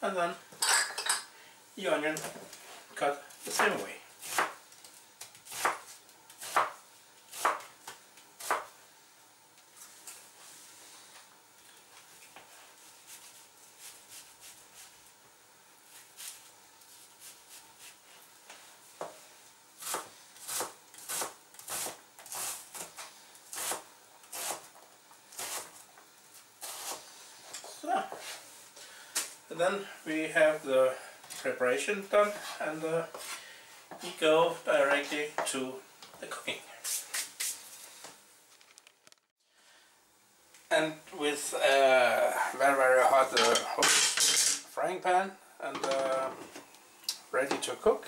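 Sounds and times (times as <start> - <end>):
knife slicing onion: 3.4 - 4.6, 5.4 - 7.7, 8.4 - 8.7, 19.8 - 24.7, 25.3 - 25.8, 26.6 - 27.0
knife chopping on cutting board: 4.2 - 4.6, 6.4 - 6.8, 7.4 - 7.7.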